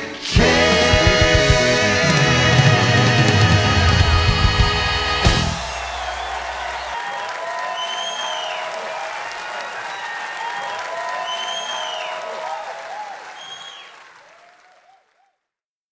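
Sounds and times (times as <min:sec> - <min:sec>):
audience applauding and cheering: 0:00.3 - 0:15.3
shouts and whistles: 0:05.5 - 0:15.4.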